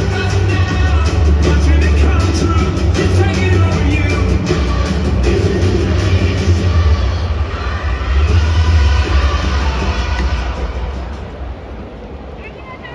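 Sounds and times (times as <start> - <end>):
song over stadium pa system: 0.0 - 12.7.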